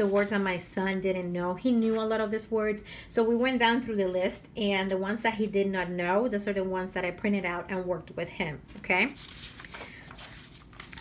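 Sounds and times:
paper pages rustling: 0:09.0 - 0:11.0.

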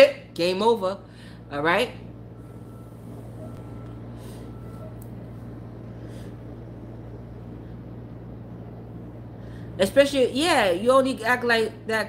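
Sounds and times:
steady low hum: 0:00.0 - 0:12.0
faint thin whistle of vape: 0:03.4 - 0:05.0.

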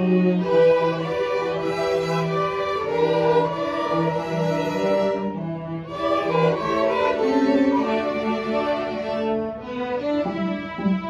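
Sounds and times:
string orchestra playing held chords: 0:00.0 - 0:11.0.

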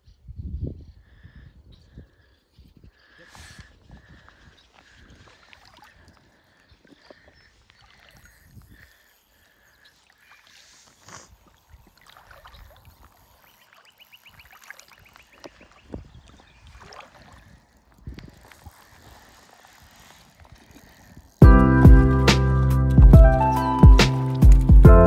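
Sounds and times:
faint water sounds: 0:00.8 - 0:21.4
fly reel clicking: 0:07.9 - 0:11.3, 0:12.2 - 0:15.5, 0:17.7 - 0:21.4
small splashes and knocks: 0:09.9 - 0:21.2.

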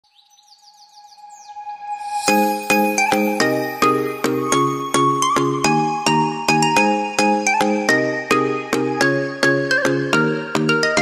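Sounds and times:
bird-like chirps: 0:00.0 - 0:04.7.

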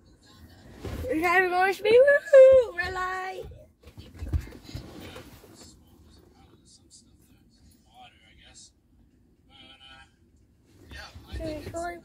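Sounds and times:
soft rustling: 0:02.5 - 0:06.7.

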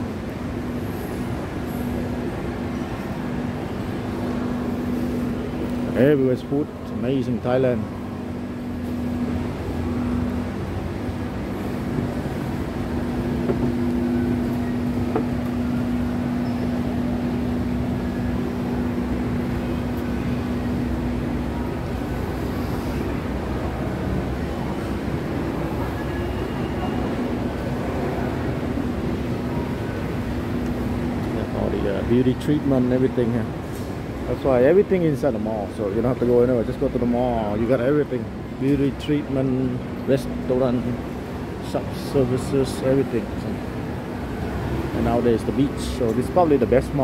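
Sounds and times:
steady hum: 0:00.0 - 0:47.0.

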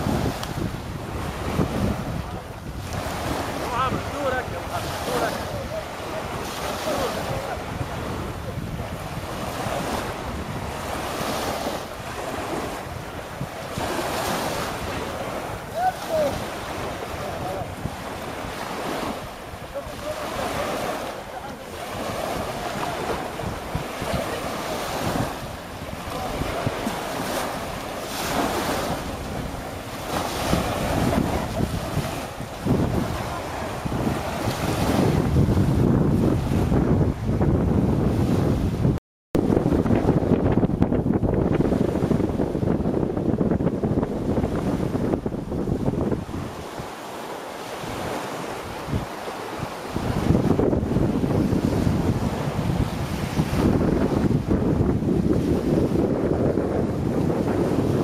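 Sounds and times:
small waves washing: 0:00.0 - 0:58.0
wind buffeting microphone: 0:00.0 - 0:58.0.

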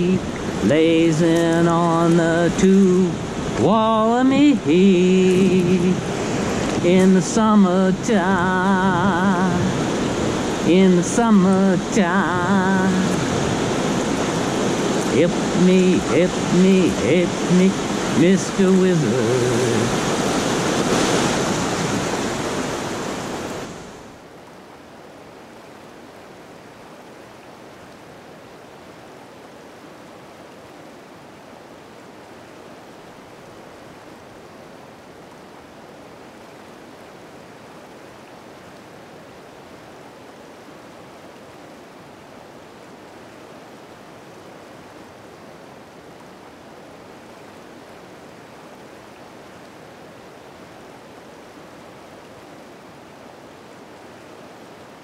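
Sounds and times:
river rapids rushing: 0:00.0 - 0:55.0.

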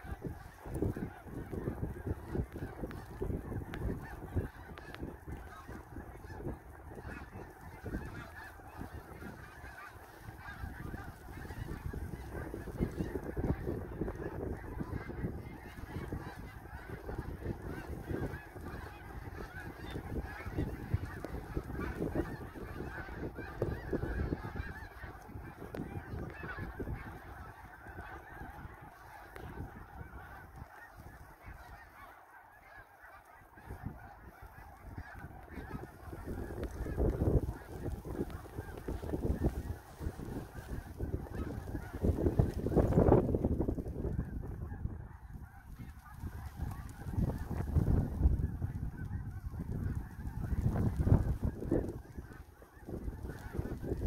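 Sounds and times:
geese honking overhead: 0:00.0 - 0:54.0
wind rumbling on microphone: 0:00.0 - 0:54.0.

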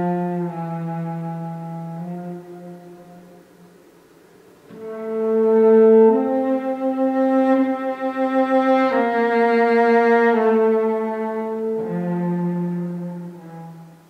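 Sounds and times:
bowed cello: 0:00.0 - 0:03.7, 0:04.6 - 0:14.0.

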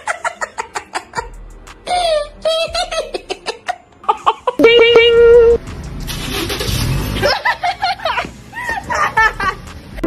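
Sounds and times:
street traffic rumble: 0:04.6 - 0:10.0.

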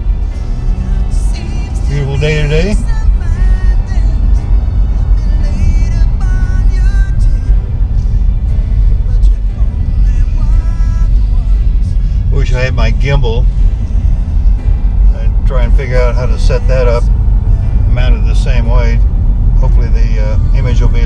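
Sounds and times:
car driving rumble: 0:00.0 - 0:21.0
music playing: 0:00.0 - 0:21.0.

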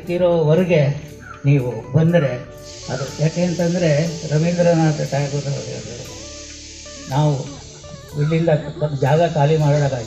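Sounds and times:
man talking into microphone: 0:00.0 - 0:06.1, 0:07.1 - 0:10.0.

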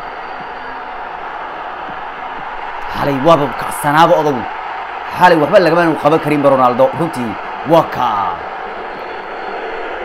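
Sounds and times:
stadium crowd roar: 0:00.0 - 0:10.0.

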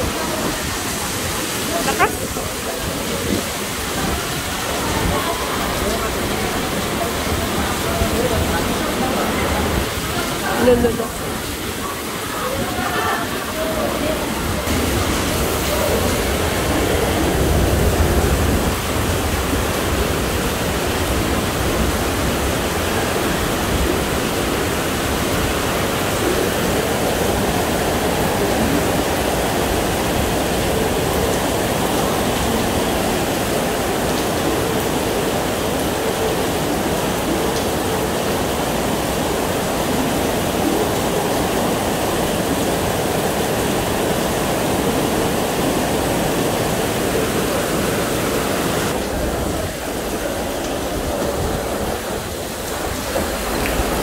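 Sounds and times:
heavy rain pouring: 0:00.0 - 0:54.0.

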